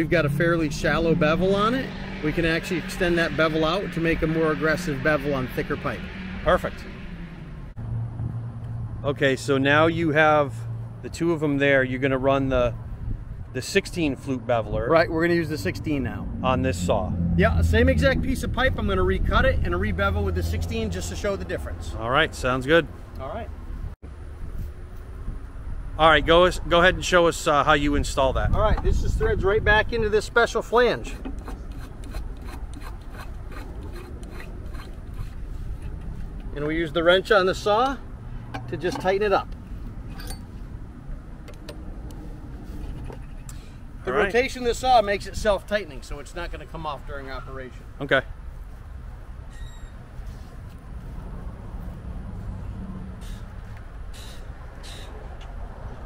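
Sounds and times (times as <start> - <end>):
low engine hum: 0.0 - 11.6, 12.2 - 27.0, 47.8 - 56.0.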